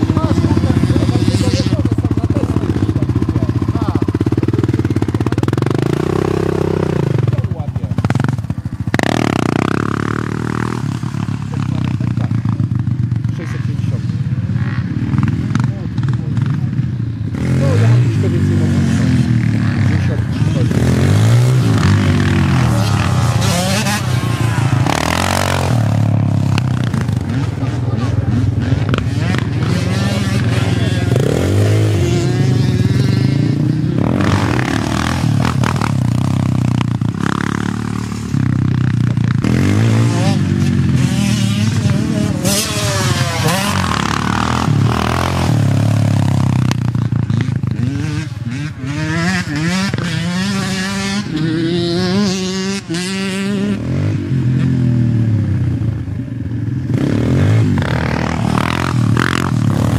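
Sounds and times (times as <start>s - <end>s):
quad engines revving: 0.0s - 59.9s.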